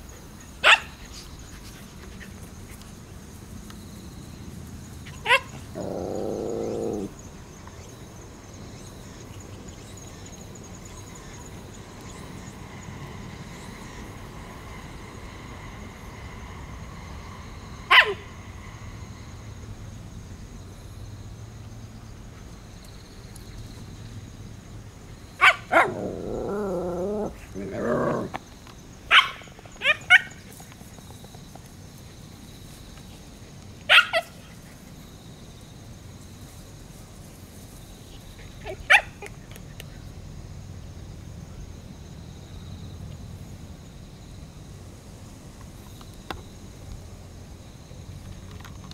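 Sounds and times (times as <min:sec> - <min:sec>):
insects trilling: 0:00.0 - 0:48.9
dog barking: 0:00.6 - 0:01.0, 0:05.2 - 0:07.1, 0:17.9 - 0:18.2, 0:25.4 - 0:26.0, 0:29.1 - 0:30.4, 0:33.9 - 0:34.4, 0:38.6 - 0:39.3
dog yelp: 0:00.6 - 0:01.0, 0:05.1 - 0:07.1, 0:17.9 - 0:18.2, 0:25.4 - 0:26.1, 0:29.1 - 0:30.4, 0:33.9 - 0:34.4, 0:38.6 - 0:39.3.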